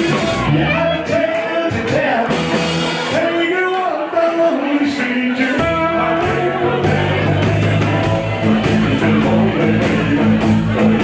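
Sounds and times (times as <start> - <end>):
bass guitar: 0.0 - 11.0
drums: 0.0 - 11.0
electric guitars: 0.0 - 11.0
man singing: 0.0 - 11.0.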